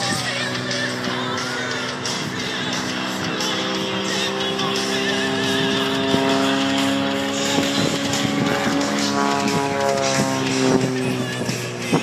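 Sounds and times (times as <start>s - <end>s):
music: 0.0s - 12.0s
propeller plane engine droning: 0.0s - 12.0s.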